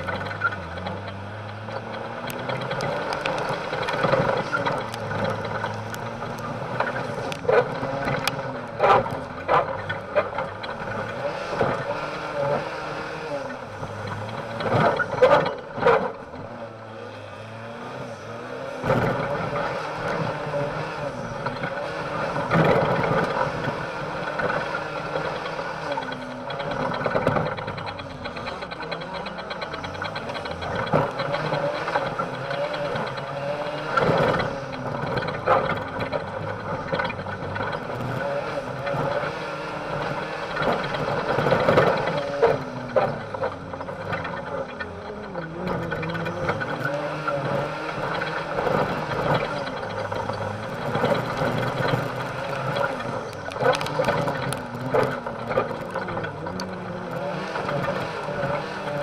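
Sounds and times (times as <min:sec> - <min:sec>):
race car engine revving: 0:00.0 - 0:59.0
tyres on loose ground: 0:00.0 - 0:59.0.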